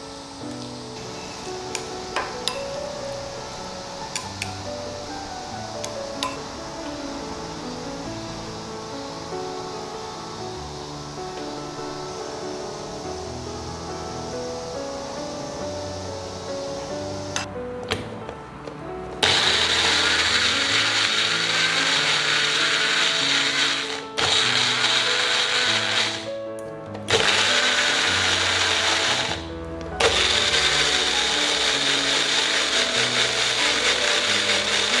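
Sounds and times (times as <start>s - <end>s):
electric blender grinding: 19.2s - 26.3s, 27.1s - 35.0s.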